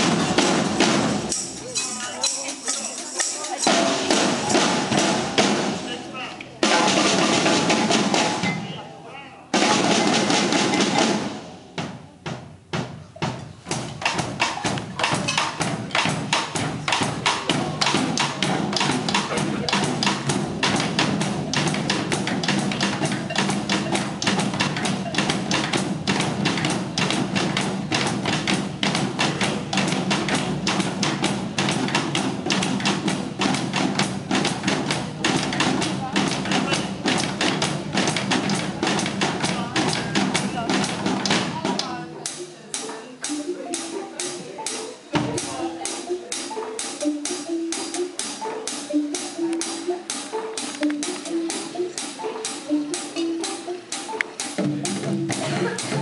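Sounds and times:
percussion ensemble drumming: 0.0 - 56.0.

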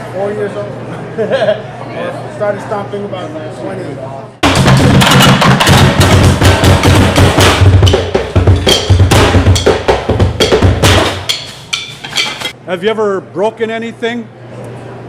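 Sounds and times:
drumsticks beating metal pans: 4.4 - 12.6.

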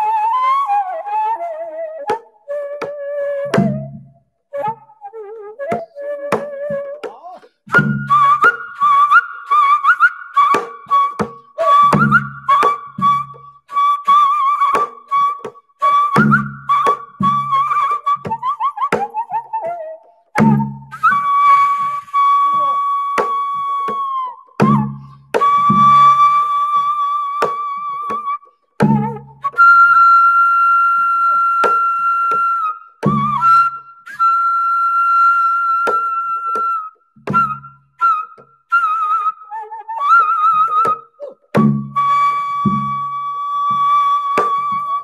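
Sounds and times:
bamboo flute with wavering vibrato: 0.0 - 45.0.

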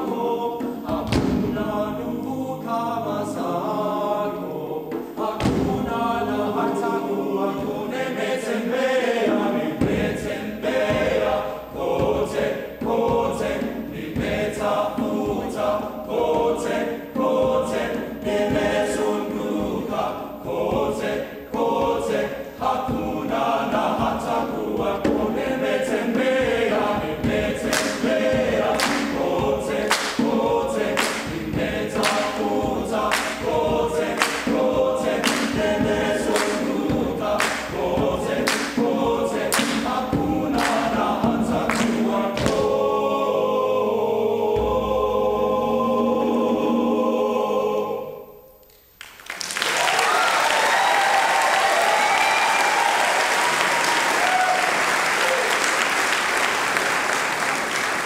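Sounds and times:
men's choir singing a cappella: 0.0 - 48.6
rhythmic hand claps: 25.0 - 42.7, 49.0 - 58.0.

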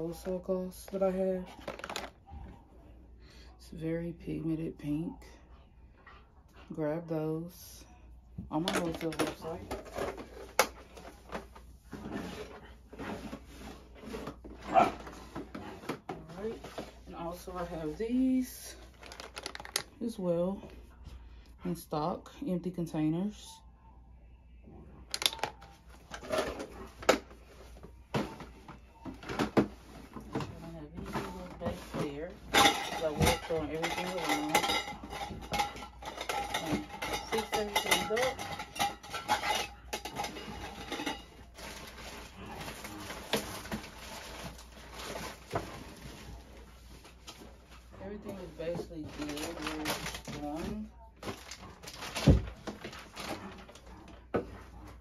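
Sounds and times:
plastic clicks and clatters: 1.6 - 2.2, 18.9 - 19.9, 25.1 - 27.2
plastic drawer rummaged through: 40.2 - 53.8.

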